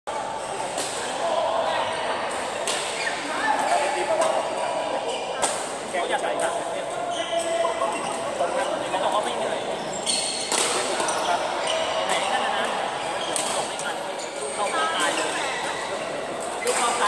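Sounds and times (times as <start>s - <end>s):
sneakers squeaking on court floor: 2.6s - 3.8s, 7.0s - 8.8s, 9.5s - 17.0s
rackets hitting shuttlecock: 10.4s - 11.2s.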